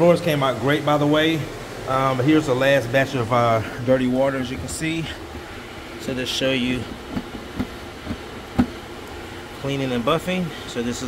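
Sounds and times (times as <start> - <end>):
steady background hum: 0.0 - 11.0
dull knocks on plastic tank: 7.1 - 8.8.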